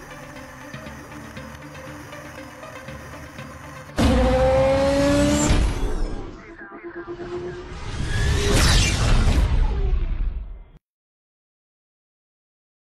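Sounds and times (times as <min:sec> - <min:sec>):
quiet background music: 0:00.0 - 0:07.6
racing car engine revving: 0:04.0 - 0:06.3.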